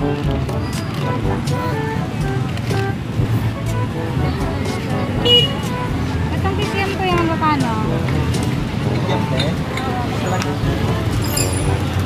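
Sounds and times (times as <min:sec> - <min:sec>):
faint voices: 0:00.0 - 0:12.0
low traffic rumble: 0:00.0 - 0:12.0.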